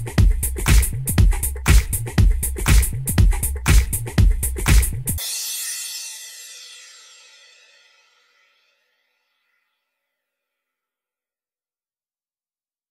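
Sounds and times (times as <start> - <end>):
cymbal crash ringing out: 5.2 - 9.2.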